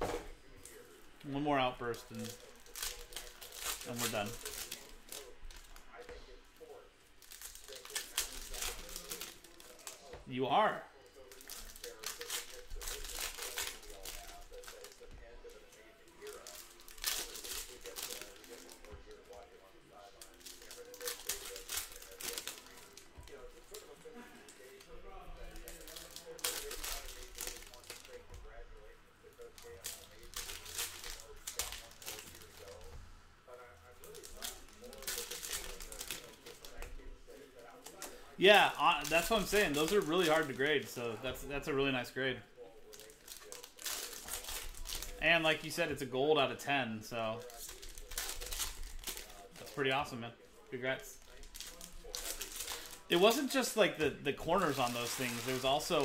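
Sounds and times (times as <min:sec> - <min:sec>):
foil wrappers tearing and crinkling: 0:01.6 - 0:10.2, 0:11.0 - 0:28.6, 0:29.4 - 0:32.9, 0:33.9 - 0:42.1, 0:42.8 - 0:46.1, 0:47.2 - 0:56.0.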